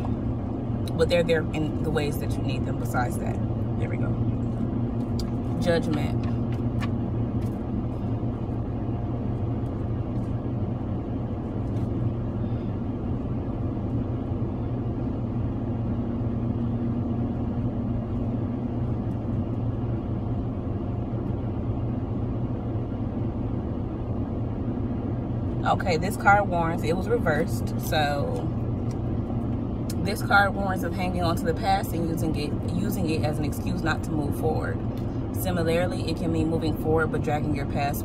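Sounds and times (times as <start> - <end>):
car engine idling: 0.0 - 38.0.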